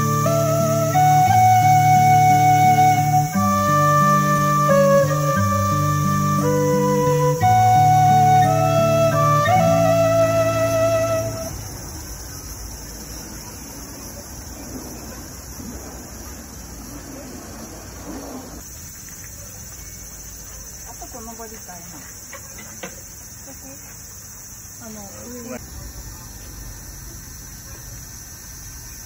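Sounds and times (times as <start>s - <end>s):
flute music: 0.0s - 11.8s
faint outdoor background noise: 0.0s - 29.0s.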